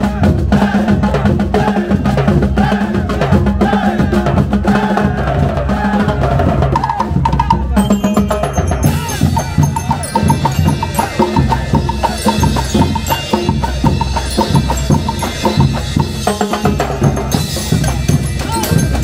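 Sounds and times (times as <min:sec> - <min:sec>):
percussion band drumming: 0:00.0 - 0:19.0
cymbals: 0:07.7 - 0:19.0.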